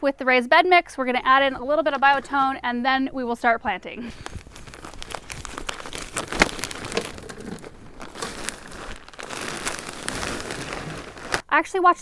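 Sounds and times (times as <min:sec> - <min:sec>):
plastic bag crinkling: 0:04.1 - 0:11.4.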